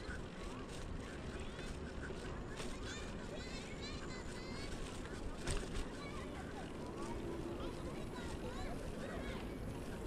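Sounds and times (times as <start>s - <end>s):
bicycle rolling on pavement: 0.0s - 10.0s.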